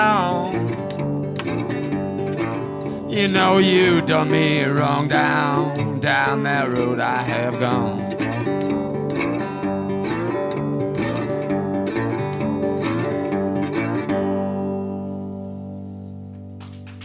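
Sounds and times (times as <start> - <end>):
resonator guitar blues: 0.0 - 16.8.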